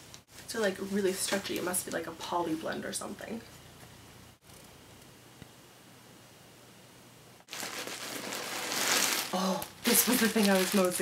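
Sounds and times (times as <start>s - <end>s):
plastic bag crinkling: 7.5s - 11.0s.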